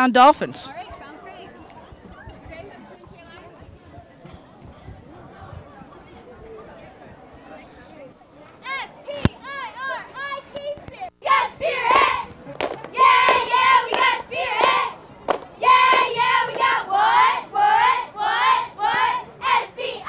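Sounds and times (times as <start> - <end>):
cheerleaders chanting in unison: 11.2 - 12.3, 12.9 - 20.0
sharp claps: 11.9 - 16.7.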